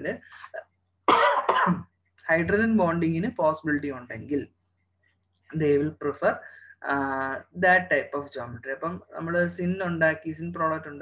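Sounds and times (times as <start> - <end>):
man speaking: 0.0 - 0.6, 2.2 - 4.5, 5.5 - 11.0
man coughing: 1.1 - 1.9.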